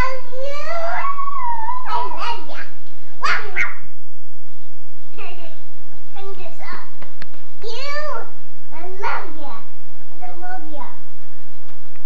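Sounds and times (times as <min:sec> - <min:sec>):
child vocalizing high-pitched: 0:00.0 - 0:03.9.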